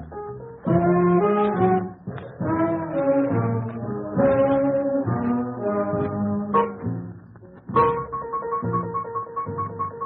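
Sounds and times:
swing big band playing: 0.2 - 6.9, 7.8 - 10.0.

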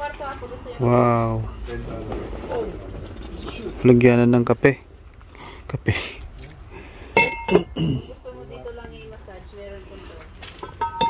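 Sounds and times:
wine glasses clinking: 7.2 - 7.9, 10.6 - 11.0.

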